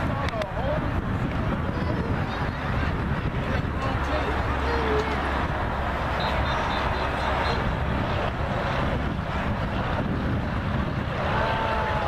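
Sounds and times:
faint sports field background: 0:00.0 - 0:12.0
wind rumble on microphone: 0:00.0 - 0:12.0.

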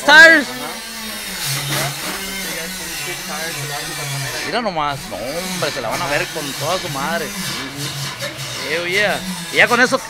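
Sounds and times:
power tool motor running: 0:00.0 - 0:10.0.

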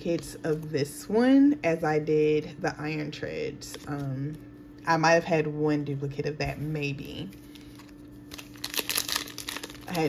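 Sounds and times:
foil wrapper crinkling: 0:07.3 - 0:10.0.

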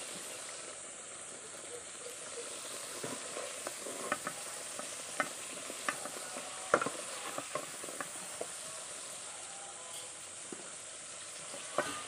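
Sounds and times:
potatoes sizzling in hot oil: 0:00.0 - 0:12.0.

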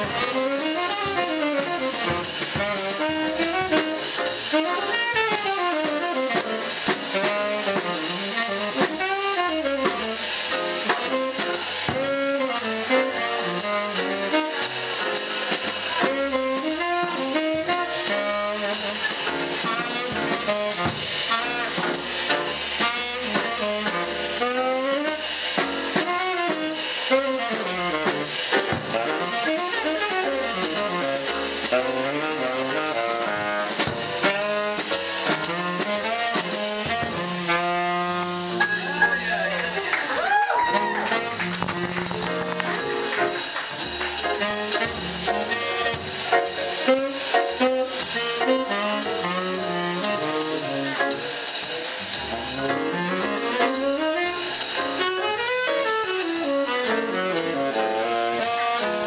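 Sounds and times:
upright bass: 0:00.0 - 0:55.0
piano: 0:00.0 - 0:59.0
tenor saxophone solo: 0:00.0 - 0:59.0.

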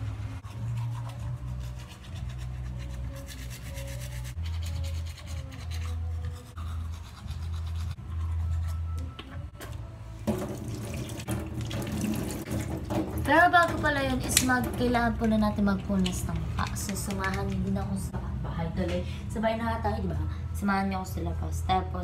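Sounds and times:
toothbrush scrubbing teeth: 0:00.4 - 0:08.9
running water: 0:10.3 - 0:14.8.

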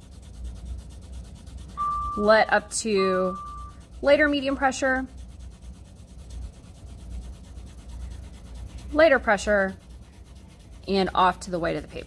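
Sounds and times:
pencil shading on paper: 0:00.0 - 0:12.0.

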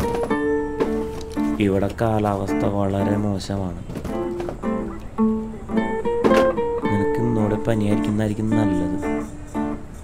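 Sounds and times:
acoustic guitar melody: 0:00.0 - 0:10.0.

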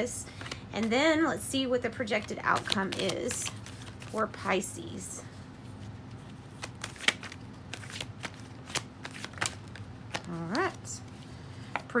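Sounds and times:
cards being shuffled: 0:00.3 - 0:01.0, 0:01.9 - 0:04.5, 0:05.4 - 0:11.8.

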